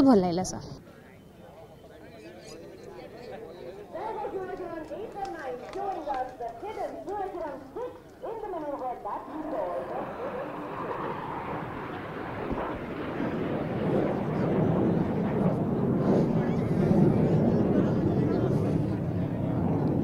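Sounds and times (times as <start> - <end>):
jet engines passing overhead: 0.6 - 20.0.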